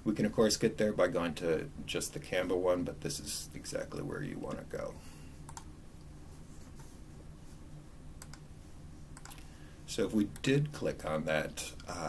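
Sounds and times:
faint low hum: 0.0 - 12.0
computer mouse clicks: 5.5 - 5.7, 8.2 - 8.5, 9.2 - 9.5.

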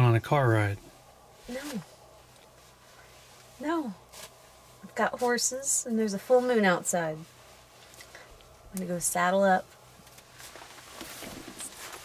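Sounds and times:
nylon jacket rustling: 10.2 - 12.0.

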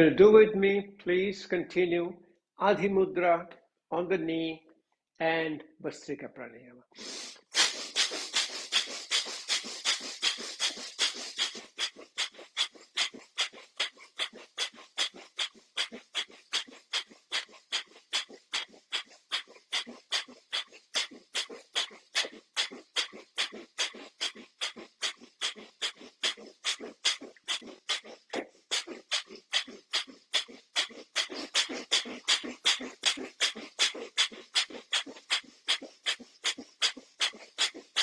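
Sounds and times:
man breathing forcefully through nose: 7.0 - 38.0.

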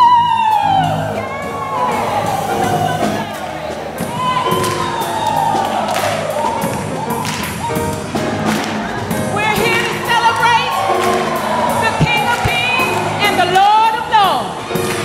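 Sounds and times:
drums: 0.0 - 15.0
piano: 0.0 - 15.0
choir clapping along: 3.0 - 13.1
low drum thumps: 11.9 - 13.0.

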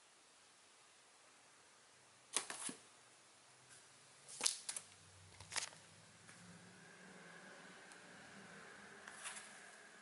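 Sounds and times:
plastic slaps and crinkles: 4.3 - 5.8.

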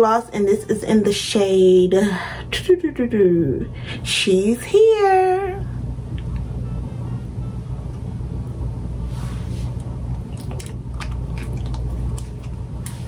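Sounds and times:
steady low hum: 0.0 - 13.0
lips smacking: 9.8 - 13.0.

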